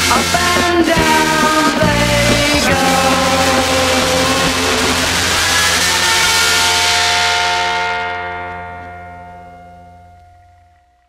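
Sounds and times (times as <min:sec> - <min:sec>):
rock band chord ringing out: 0:00.0 - 0:10.8
cymbal wash: 0:02.7 - 0:08.6.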